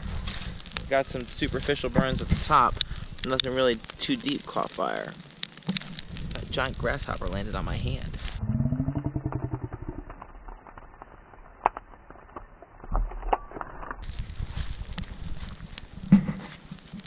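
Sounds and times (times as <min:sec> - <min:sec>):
bonfire crackling and popping: 0:00.0 - 0:17.0.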